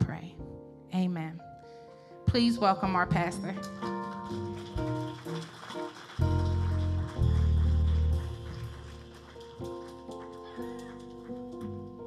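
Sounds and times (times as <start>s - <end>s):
keyboard playing held chords: 3.8s - 12.0s.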